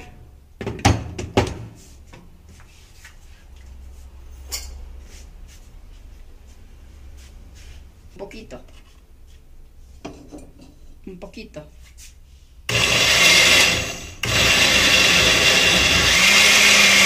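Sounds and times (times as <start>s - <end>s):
faint handling sounds: 1.8s - 11.0s.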